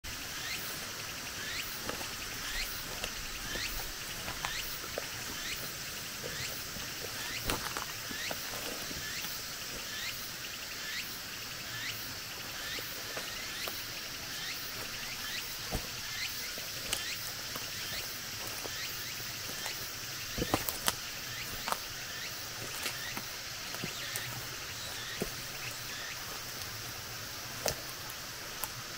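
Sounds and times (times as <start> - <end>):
steady high hiss: 0.0 - 28.9
twigs snapping underfoot: 1.5 - 9.9, 14.7 - 28.9.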